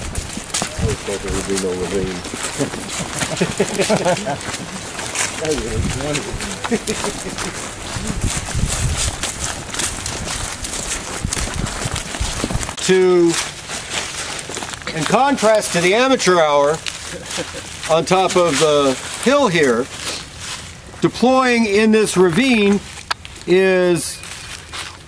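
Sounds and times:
footsteps crunching dry leaves: 0:00.0 - 0:25.0.

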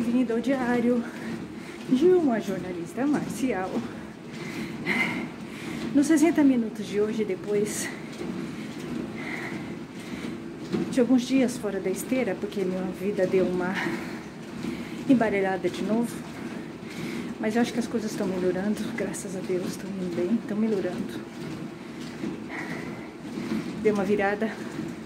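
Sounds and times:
treadmill motor and belt rumble: 0:00.0 - 0:25.0.

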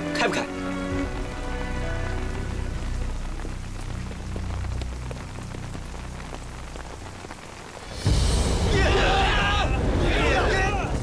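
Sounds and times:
rain-like hiss: 0:00.0 - 0:11.0.

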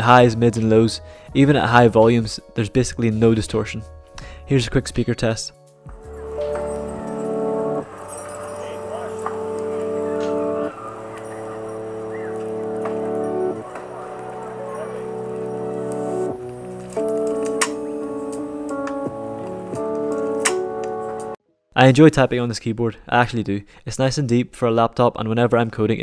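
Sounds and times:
mellow music with held chords: 0:00.0 - 0:21.6.

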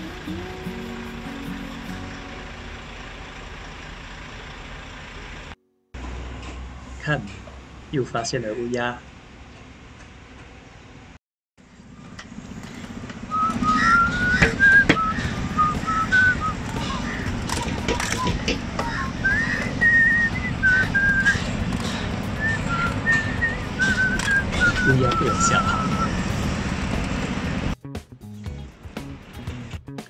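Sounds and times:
person whistling a tune: 0:13.3 - 0:16.7, 0:18.2 - 0:21.5, 0:22.4 - 0:26.2.

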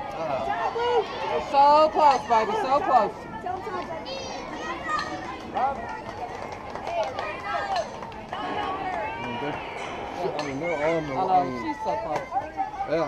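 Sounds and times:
people talking and calling out: 0:00.0 - 0:13.0
steady outdoor background hum: 0:00.0 - 0:13.0.

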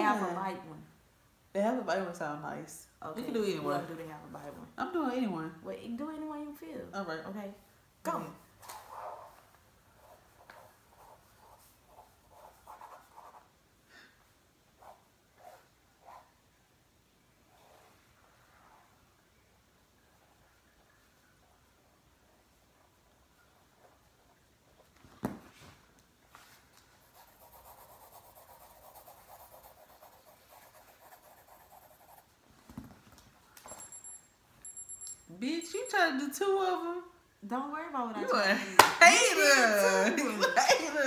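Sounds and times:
pencil strokes scratching paper: 0:08.6 - 0:13.5, 0:14.8 - 0:16.4, 0:17.4 - 0:19.0, 0:26.3 - 0:32.4.

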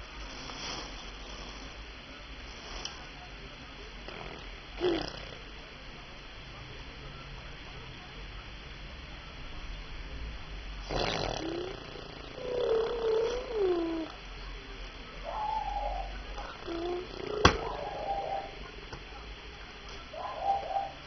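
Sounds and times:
baby cooing and babbling: 0:11.4 - 0:14.2, 0:16.4 - 0:18.0.

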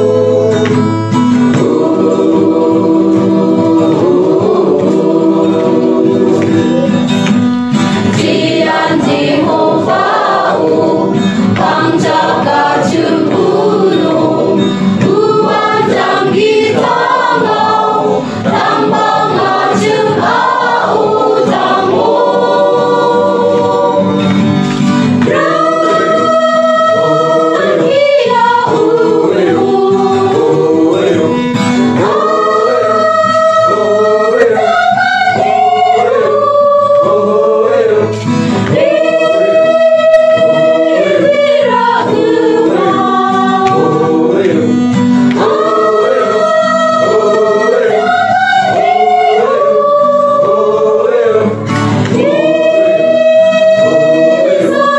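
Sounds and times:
choir singing gospel: 0:00.0 - 0:54.9
instrumental backing: 0:00.0 - 0:54.9.

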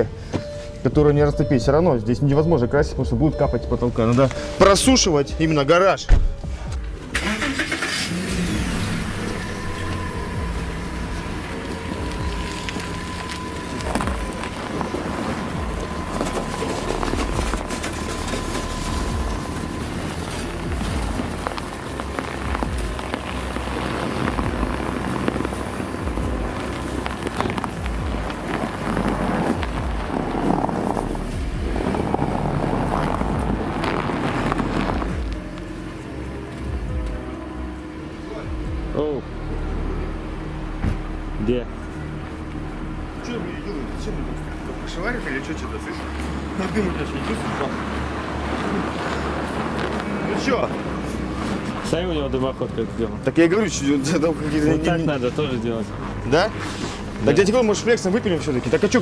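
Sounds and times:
steady high tone: 0:00.0 - 0:30.2
car engine running: 0:00.0 - 0:59.0.

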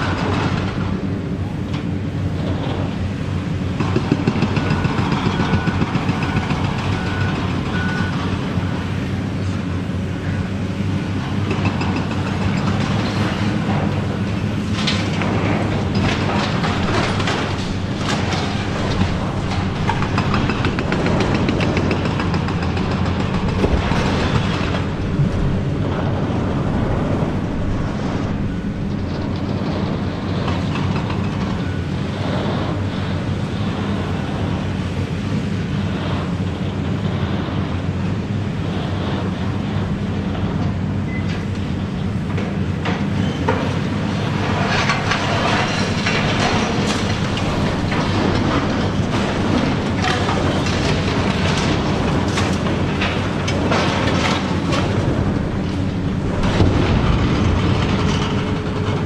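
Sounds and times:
diesel engine under load: 0:00.0 - 0:59.0
debris crumbling and clattering: 0:11.5 - 0:31.9, 0:41.6 - 0:59.0.

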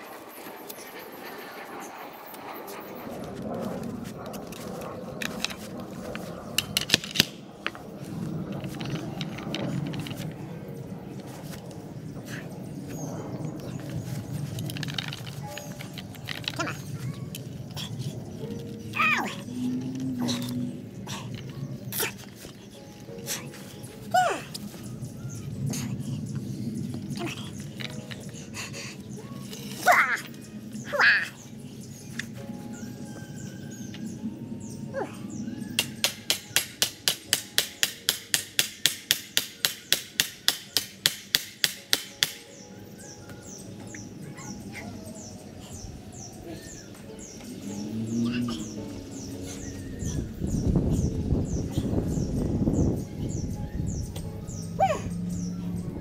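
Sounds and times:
birds chirping: 0:00.0 - 0:56.0.

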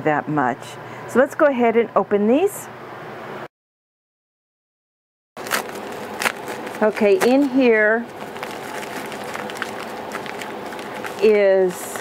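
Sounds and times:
padded envelope pulled out: 0:05.4 - 0:12.0
plastic mailer crinkling: 0:05.4 - 0:12.0.

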